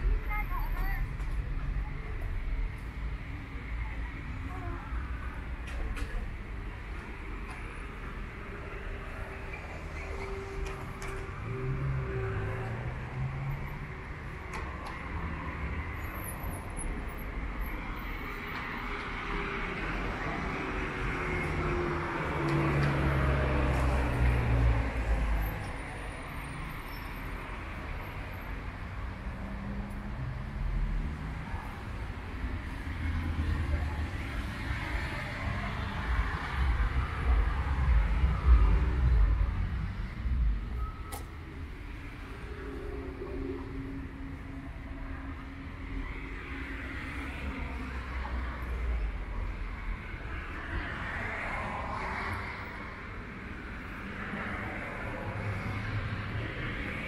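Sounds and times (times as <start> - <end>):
cars driving past: 5.1 - 57.0.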